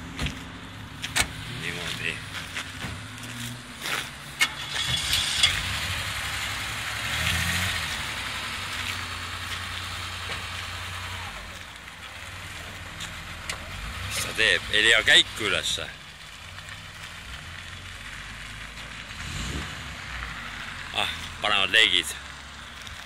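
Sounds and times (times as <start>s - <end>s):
car engine idling: 0.0s - 23.0s.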